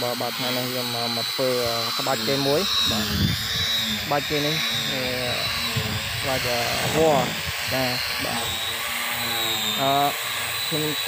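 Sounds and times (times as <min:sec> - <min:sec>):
person talking: 0:00.0 - 0:03.3, 0:04.0 - 0:08.6, 0:09.7 - 0:11.0
high-pitched whine: 0:00.0 - 0:11.0.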